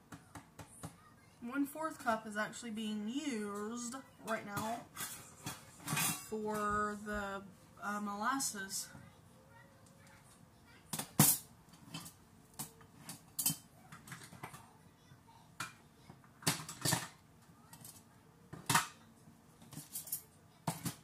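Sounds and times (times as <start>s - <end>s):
kitchen utensils clattering: 3.6s - 7.0s, 11.0s - 12.2s, 13.0s - 14.6s, 16.4s - 17.2s, 19.6s - 21.0s.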